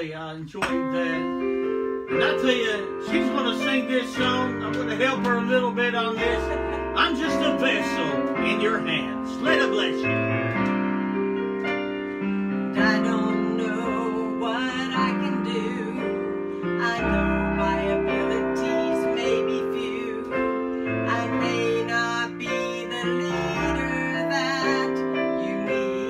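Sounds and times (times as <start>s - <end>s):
piano playing sustained chords: 0.9s - 26.0s.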